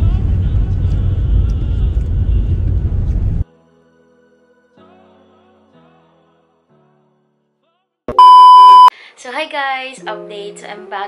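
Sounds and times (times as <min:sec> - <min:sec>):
loud electronic beep: 0:08.1 - 0:08.9.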